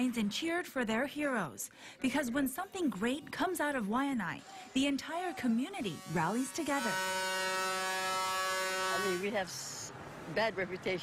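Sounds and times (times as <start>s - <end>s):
truck air horn blast: 5.8s - 9.8s.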